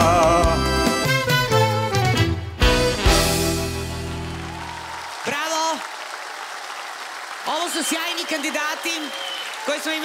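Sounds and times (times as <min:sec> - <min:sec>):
audience applauding: 0:03.4 - 0:10.0.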